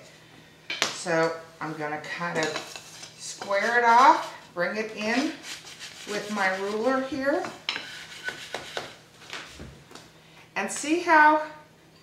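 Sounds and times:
soft brushing scrape: 0:02.6 - 0:09.6.

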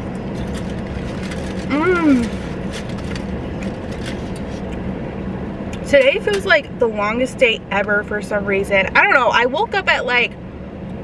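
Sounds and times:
car engine hum inside cabin: 0:00.0 - 0:11.0.

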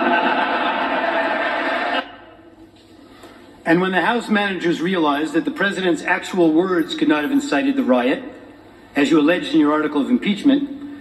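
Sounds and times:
crowd laughing through tv speaker: 0:00.0 - 0:02.0
low background hum: 0:00.0 - 0:11.0.

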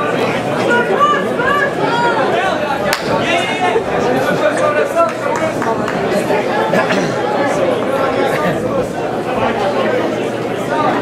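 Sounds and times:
crowd chatter and calling out: 0:00.0 - 0:11.0.

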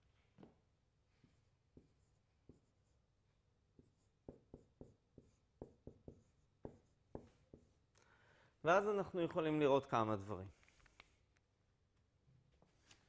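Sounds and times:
marker writing on whiteboard: 0:00.4 - 0:07.9.

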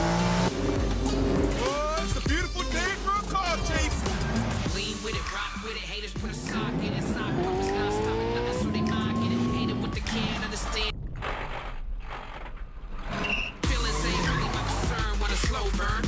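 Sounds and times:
music: 0:00.0 - 0:10.9, 0:13.6 - 0:16.0
tyre squeal: 0:13.1 - 0:14.5.

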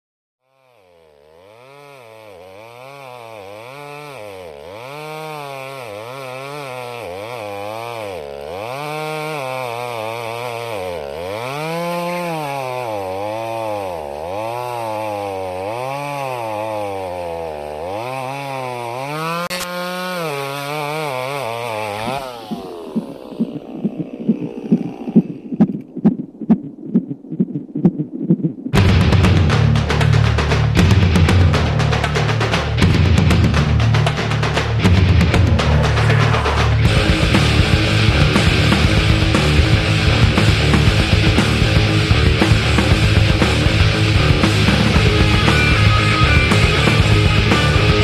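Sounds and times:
chainsaw engine revving: 0:00.4 - 0:25.6, 0:28.8 - 0:48.0
regular pulsing beat: 0:22.0 - 0:32.8, 0:33.5 - 0:48.0.

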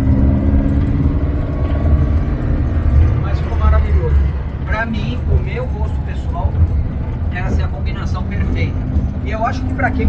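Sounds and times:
car engine rumbling: 0:00.0 - 0:10.0.

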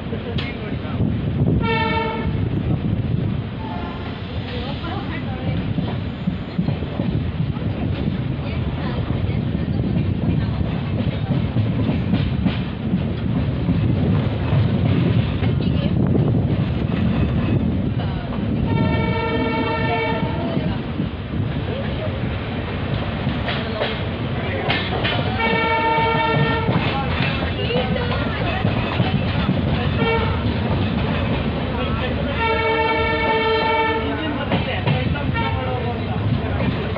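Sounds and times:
train wheels rumbling on track: 0:00.0 - 0:36.9
locomotive multi-tone horn: 0:01.6 - 0:02.4, 0:18.7 - 0:20.4, 0:25.4 - 0:26.9, 0:29.9 - 0:30.5, 0:32.3 - 0:34.2, 0:35.3 - 0:35.7.

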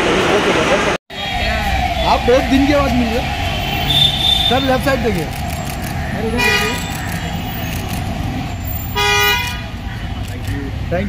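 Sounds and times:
low street rumble: 0:00.0 - 0:11.0
vehicle horn honk: 0:03.5 - 0:04.8, 0:06.4 - 0:06.9, 0:08.9 - 0:09.7.

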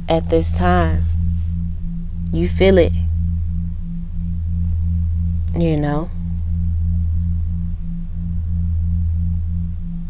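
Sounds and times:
low droning tone: 0:00.0 - 0:10.0
pulsing higher tone: 0:00.0 - 0:10.0.

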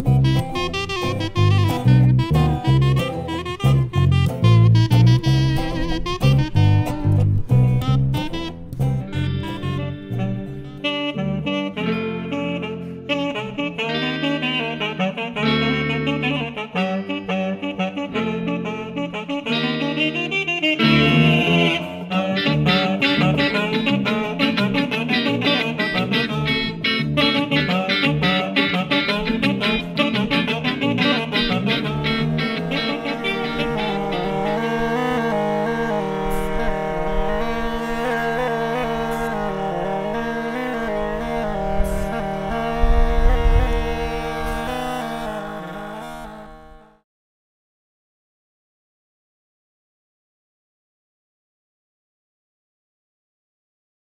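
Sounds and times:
upright bass: 0:00.0 - 0:17.1, 0:20.8 - 0:46.2
guitar: 0:00.0 - 0:47.0
reedy wind instrument melody: 0:00.0 - 0:47.0
steady held note: 0:20.8 - 0:47.0.

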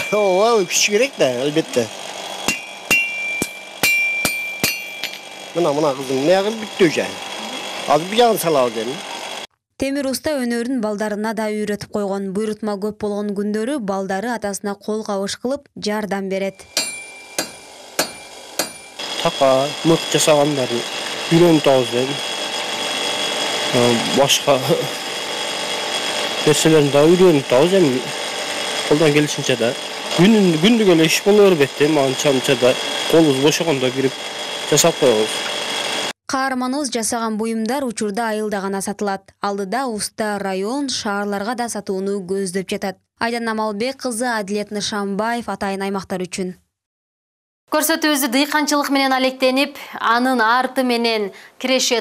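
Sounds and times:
hammer striking iron on anvil: 0:00.0 - 0:00.9, 0:02.4 - 0:05.5, 0:16.6 - 0:19.0.

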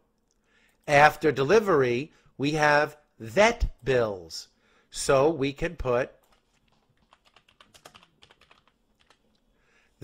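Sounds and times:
keyboard typing: 0:06.2 - 0:09.4.

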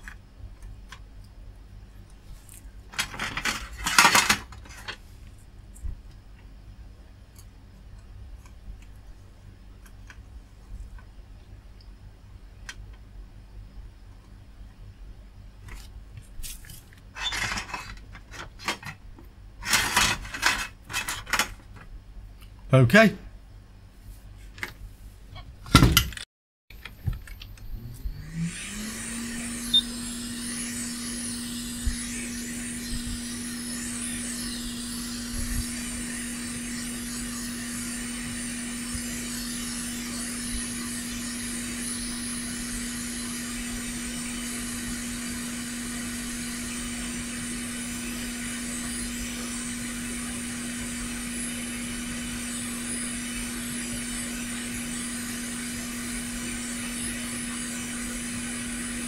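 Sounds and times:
hot air station fan hum: 0:26.8 - 0:59.0.

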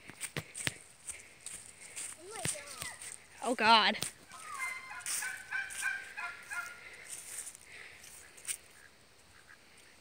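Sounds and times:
poultry calling: 0:04.2 - 0:07.5, 0:08.1 - 0:10.0.

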